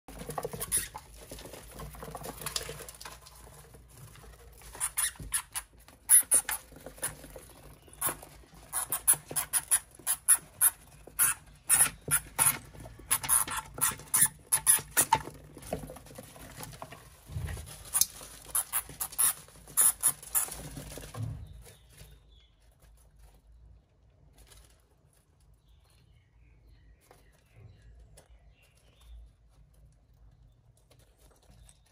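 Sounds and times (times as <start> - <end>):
hamsters fighting: 0.1 - 24.8
hamsters scuffling: 0.1 - 31.9.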